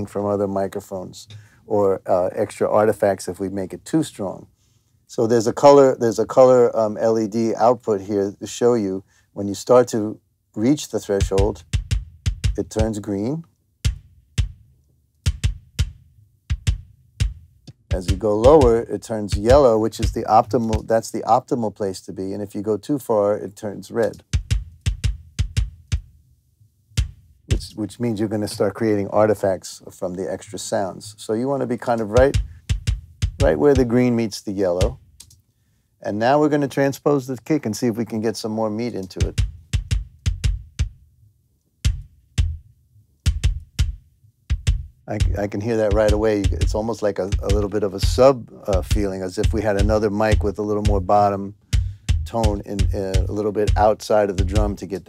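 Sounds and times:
kick drum hits: 11.2 - 13.0, 13.8 - 14.7, 15.3 - 18.8, 19.4 - 20.9, 24.2 - 26.2, 27.0 - 27.4, 32.2 - 33.9, 39.2 - 41.1, 41.9 - 42.7, 43.3 - 48.2, 48.8 - 54.8.

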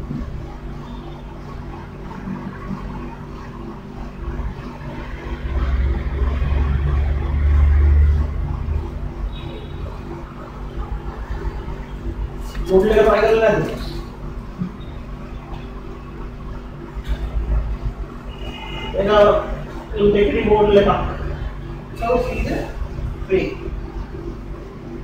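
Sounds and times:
low electrical hum: 0.0 - 25.0.

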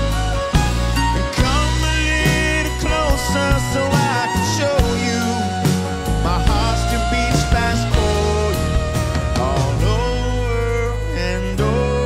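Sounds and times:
acoustic guitar: 0.0 - 12.0
fiddle sliding notes: 0.0 - 12.0
live country band playing: 0.0 - 12.0.

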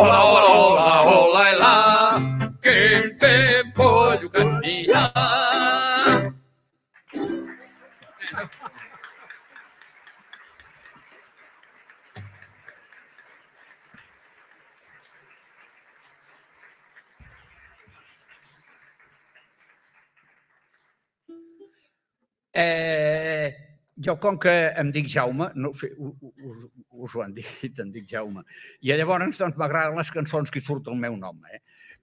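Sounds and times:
folk song singing: 0.0 - 6.4
guitar: 0.0 - 6.4
ukulele: 0.0 - 6.4, 7.1 - 8.5, 21.3 - 21.9
audience applause: 7.0 - 21.2.

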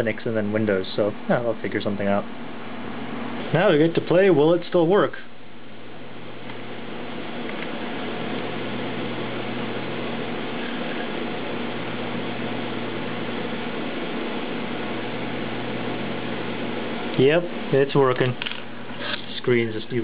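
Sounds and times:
steady whirring hiss: 0.0 - 20.0.

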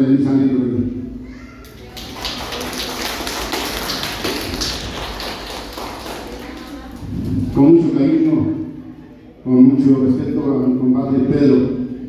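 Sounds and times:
group of people clapping: 1.6 - 7.6.

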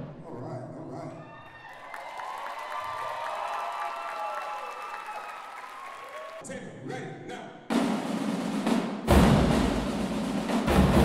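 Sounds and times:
long high cheers: 1.1 - 6.4
audience applauding: 1.3 - 6.4.

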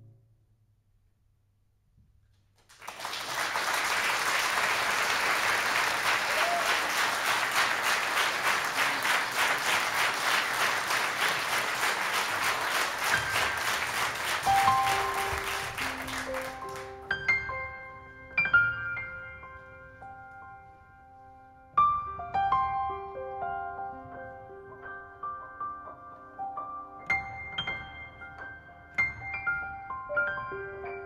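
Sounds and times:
audience applause: 2.6 - 17.2.

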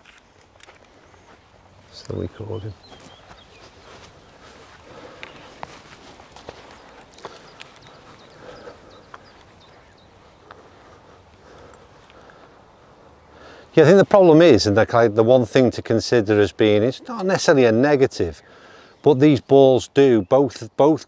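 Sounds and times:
footsteps on grass: 0.0 - 13.0
soft outdoor hiss: 0.0 - 21.0.

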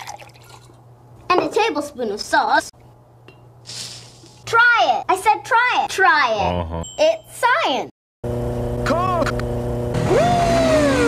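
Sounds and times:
person speaking: 6.4 - 6.9.

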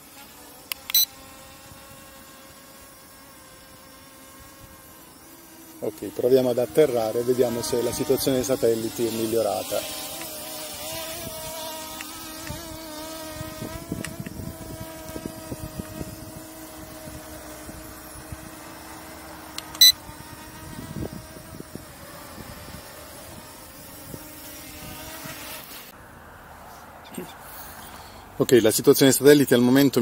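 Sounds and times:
drone motors buzzing: 0.0 - 26.0
sharp click: 0.7 - 1.1, 19.6 - 19.9.

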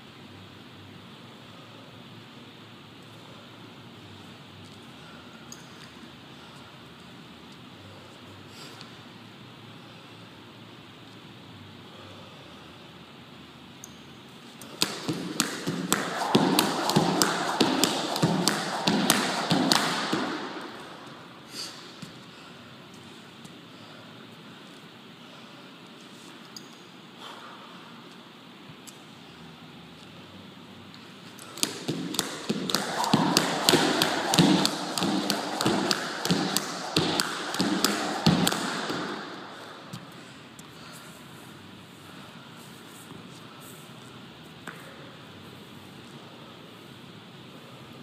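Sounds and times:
jump rope slapping floor: 14.6 - 22.2, 31.3 - 40.2.

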